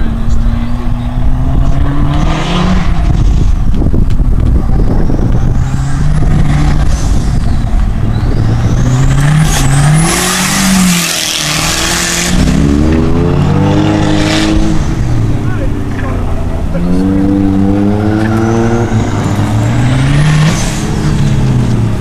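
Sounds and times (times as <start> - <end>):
car engine accelerating: 0.0 - 22.0.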